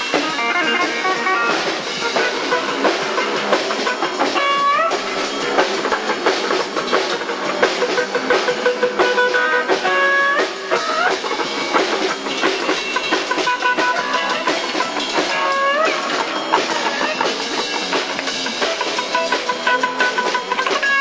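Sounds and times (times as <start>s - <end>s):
electric guitar sliding up: 0.0s - 21.0s
live rock band playing: 0.0s - 21.0s.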